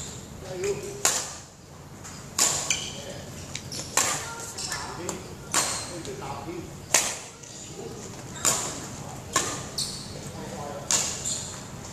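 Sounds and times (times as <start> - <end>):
racket hitting shuttlecock: 1.0 - 1.4, 2.4 - 2.9, 6.9 - 7.3, 10.9 - 11.2.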